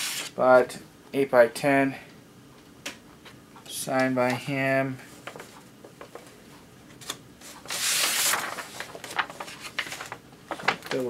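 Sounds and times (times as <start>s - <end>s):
paper photo rubbing and sliding: 0.0s - 0.3s, 7.4s - 10.6s.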